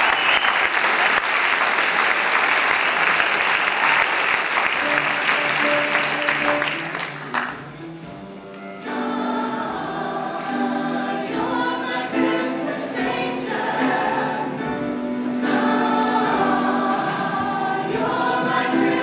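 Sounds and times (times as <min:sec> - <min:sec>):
choir singing in harmony: 0:08.6 - 0:19.0.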